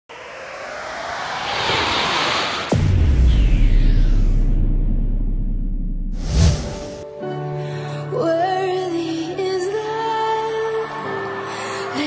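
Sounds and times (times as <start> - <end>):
rising whoosh: 0.1 - 7.0.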